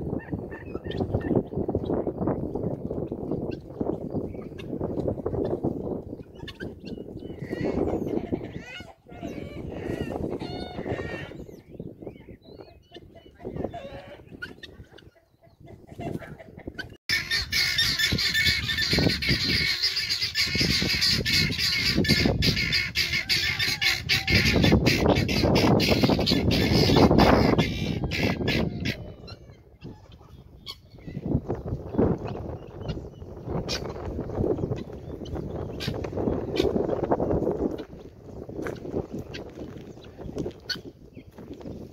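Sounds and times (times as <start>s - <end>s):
guinea fowl calling: 6.2s - 31.3s, 32.1s - 37.9s, 38.6s - 41.2s.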